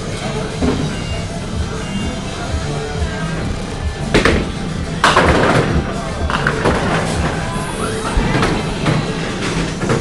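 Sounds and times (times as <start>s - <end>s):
background music: 0.0s - 10.0s
bowling pins crashing: 4.1s - 7.5s.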